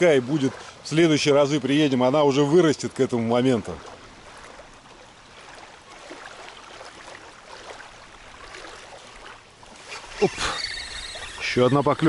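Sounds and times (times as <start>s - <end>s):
water lapping at shore: 0.0s - 12.0s
fishing reel whirring: 10.1s - 12.0s.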